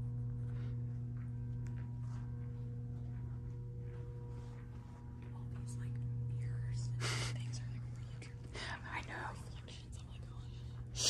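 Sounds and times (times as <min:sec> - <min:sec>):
low hum: 0:00.0 - 0:11.0
person whispering: 0:05.6 - 0:10.5.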